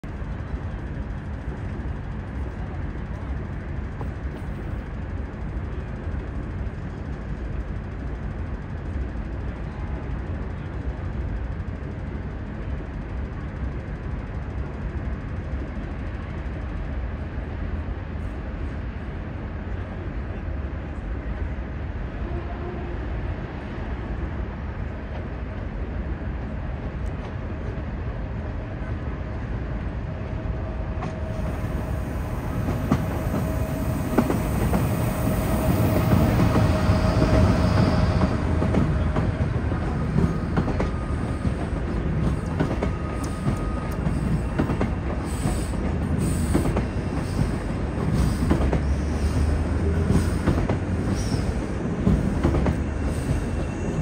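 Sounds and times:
train rumbling past: 0.0s - 54.0s
train whine: 0.0s - 54.0s.

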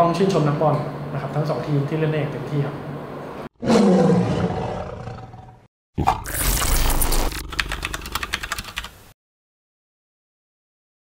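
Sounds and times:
tiger roar: 3.6s - 7.6s.

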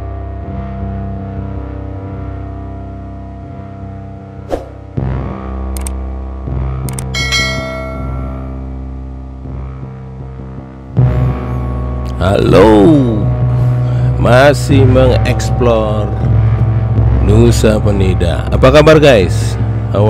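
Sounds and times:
low sustained background music: 0.0s - 20.0s
clicks: 5.8s - 6.0s
bright ringing chime: 7.2s - 8.7s.

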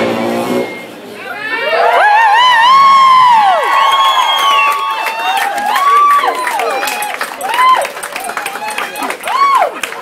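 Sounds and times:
crowd cheering and screaming: 1.2s - 10.0s.

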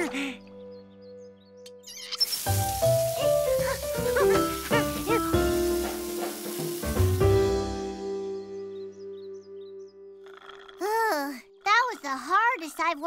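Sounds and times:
cartoon background music: 0.0s - 13.0s
water rushing into garden hose: 2.0s - 7.7s.

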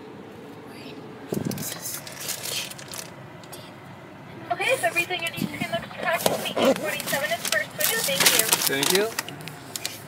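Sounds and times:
idling car hum: 0.0s - 10.0s
paper rustling: 1.4s - 3.1s, 6.2s - 10.0s.

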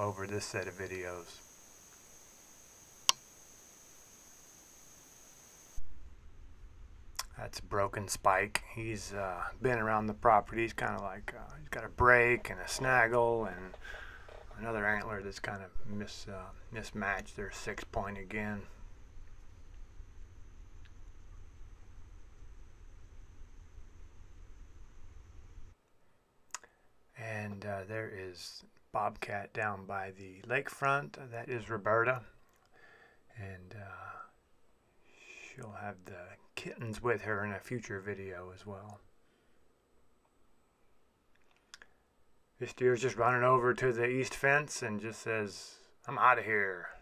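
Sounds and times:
thin high-pitched hum: 0.0s - 25.7s
steady hiss: 0.0s - 25.8s
sharp click: 3.0s - 3.3s
low rumble: 5.8s - 14.8s.

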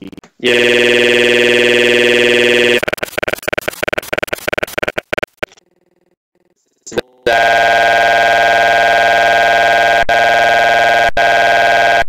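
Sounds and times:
choppy digital stuttering: 0.0s - 5.6s
electronic buzzing tone: 0.4s - 6.6s, 7.3s - 12.0s.

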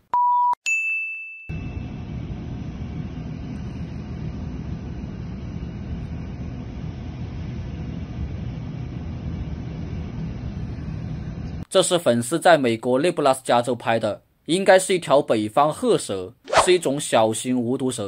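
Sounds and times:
bell-like ding: 0.7s - 1.8s
outdoor rumble with hiss: 1.6s - 11.6s.

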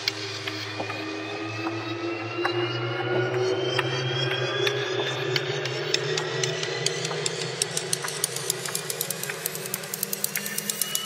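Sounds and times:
bell tones gliding upward: 0.6s - 11.0s.

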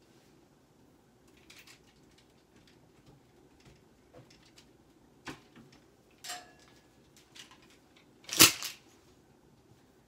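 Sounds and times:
clothes hangers clacking: 5.3s - 8.8s.

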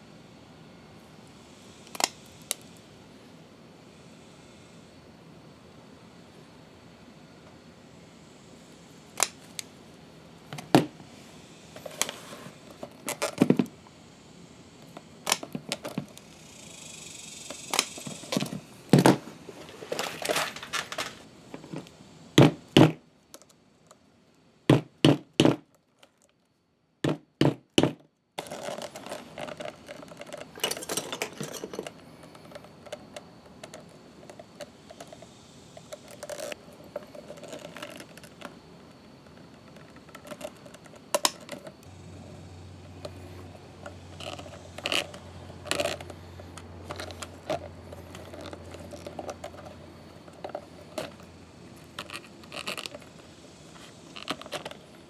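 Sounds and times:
faint steady hiss: 0.0s - 24.7s, 28.1s - 55.0s
small metal fittings clinking: 28.4s - 38.5s.

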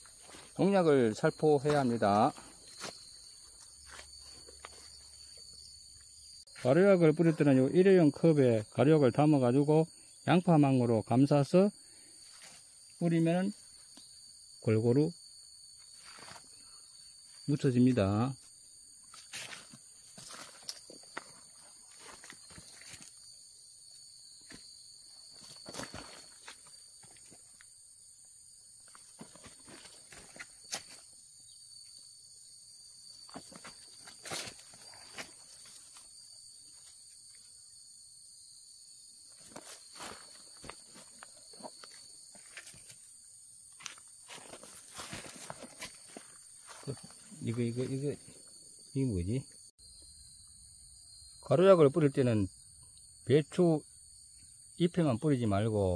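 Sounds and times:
footsteps in dry mulch: 0.0s - 5.5s, 19.0s - 23.3s, 24.4s - 27.6s, 28.8s - 31.1s, 33.2s - 36.2s, 39.4s - 43.1s, 43.7s - 48.0s.

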